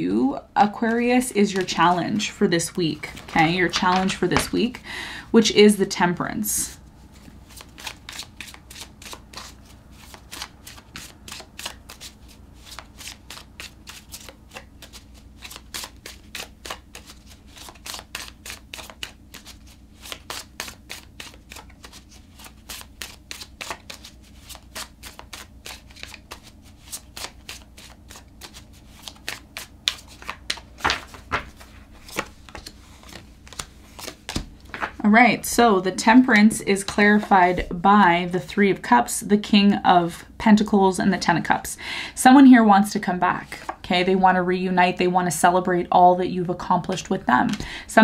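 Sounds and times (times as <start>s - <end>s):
cards being shuffled: 0.8s - 4.7s, 7.1s - 35.0s, 36.7s - 37.8s.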